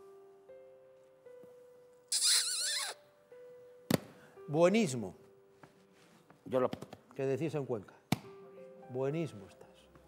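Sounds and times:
soft background music: 0.0 - 10.0
man making high-pitched squeak: 2.1 - 3.0.

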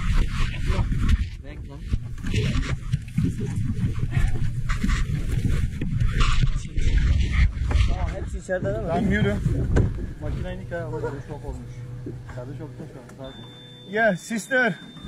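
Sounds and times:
clothing and rope rubbing: 0.0 - 10.8.

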